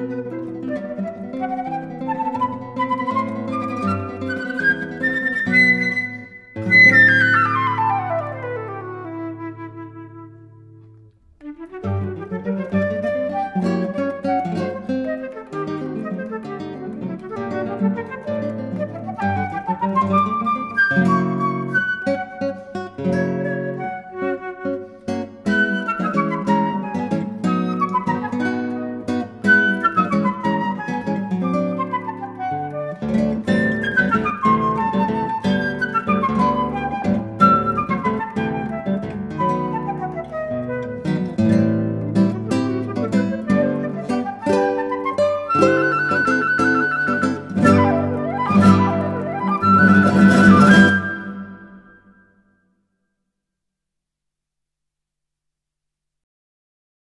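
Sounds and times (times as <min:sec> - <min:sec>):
plucked classical guitar: 0:00.0 - 0:52.3
flute: 0:00.0 - 0:52.6.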